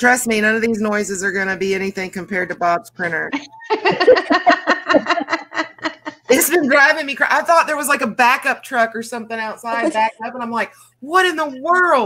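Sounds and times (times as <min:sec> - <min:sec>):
women laughing hard: 0:03.4 - 0:06.8.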